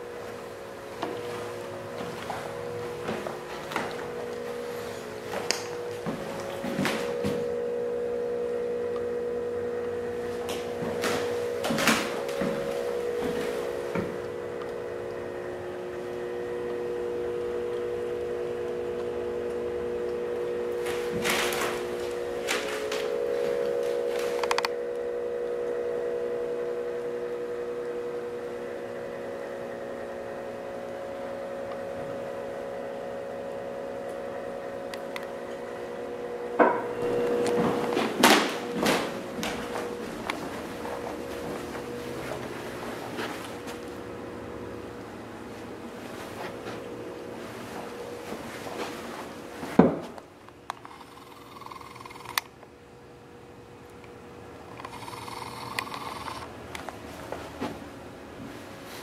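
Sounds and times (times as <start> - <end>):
steady hum of held tones: 0.0 - 59.0.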